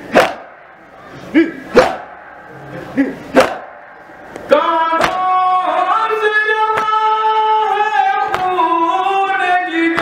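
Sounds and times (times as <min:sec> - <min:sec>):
group chanted cry: 0:00.1 - 0:00.5, 0:01.7 - 0:02.2, 0:03.3 - 0:03.9
chest beating slaps: 0:00.1 - 0:00.6, 0:01.8 - 0:02.2, 0:03.3 - 0:04.0, 0:05.0 - 0:05.2.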